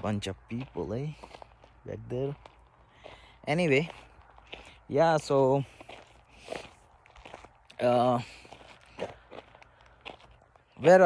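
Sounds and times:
soft footsteps: 0.0s - 11.0s.

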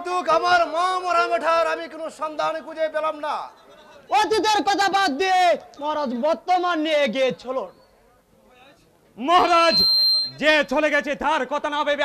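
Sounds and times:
man speaking expressively: 4.1s - 7.7s.

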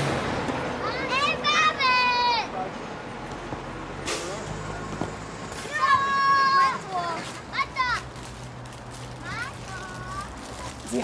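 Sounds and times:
children shouting while playing: 0.8s - 2.6s, 5.6s - 8.1s.

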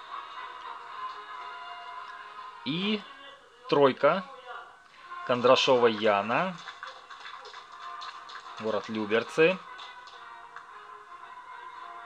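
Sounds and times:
background music with sustained tones: 0.0s - 12.0s.

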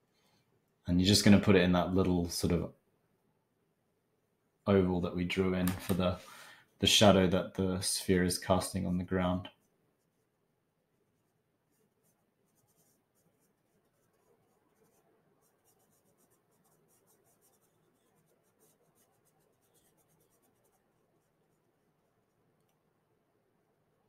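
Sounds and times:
paintbrush scratching on canvas: 9.5s - 22.7s.

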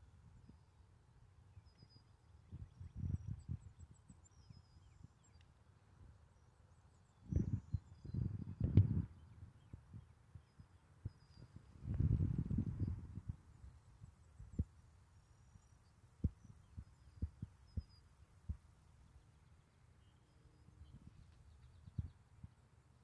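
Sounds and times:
muffled rumbling on microphone: 7.3s - 10.1s, 11.0s - 13.5s.

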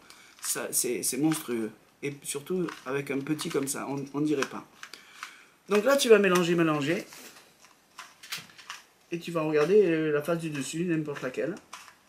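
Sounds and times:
plastic puzzle cube clicks: 2.1s - 6.6s, 7.6s - 8.9s, 10.6s - 12.0s.

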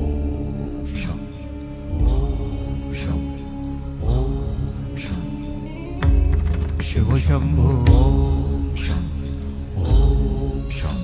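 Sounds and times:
deep bass hits: 6.0s - 8.8s.

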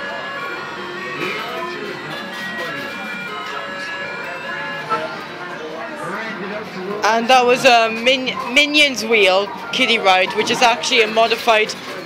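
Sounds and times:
kiddie ride electronic tune: 0.0s - 12.0s.

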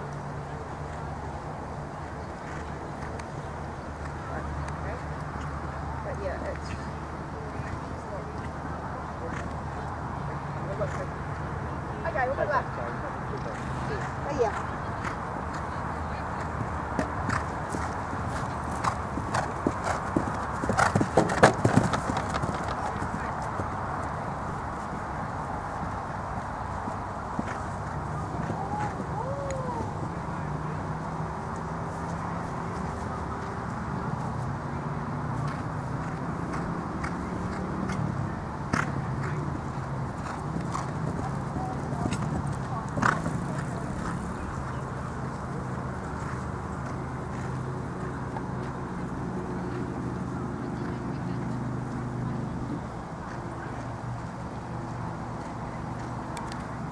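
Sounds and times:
horse hoofbeats on turf: 16.4s - 23.7s, 38.7s - 44.9s.

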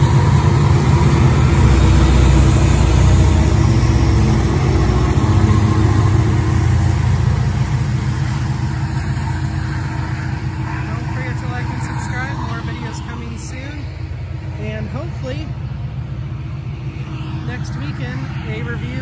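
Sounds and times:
diesel locomotive engine drone: 0.0s - 19.0s
train wheel and rail noise: 0.0s - 19.0s.

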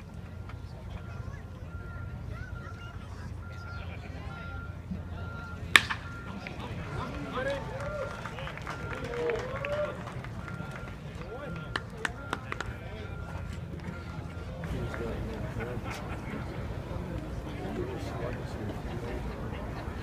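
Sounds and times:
crowd murmur: 0.0s - 20.0s
voices calling out: 0.0s - 20.0s
baseball smacking glove: 5.7s - 6.2s.

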